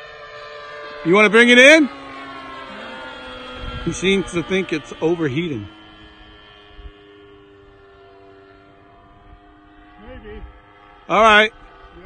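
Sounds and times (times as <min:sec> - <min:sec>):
model plane engine drone: 0:00.0 - 0:12.0.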